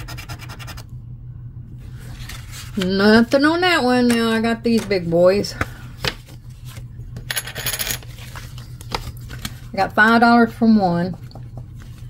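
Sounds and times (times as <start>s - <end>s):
lottery ticket being scratched: 0.0s - 0.8s.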